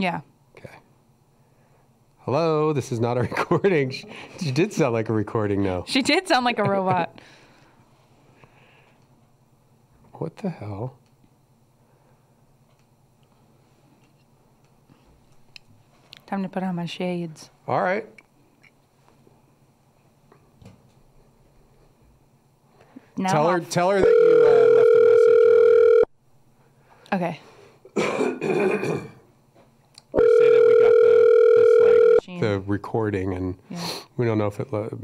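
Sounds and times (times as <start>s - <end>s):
telephone ringback tone: 24.0s - 26.1s, 30.2s - 32.3s.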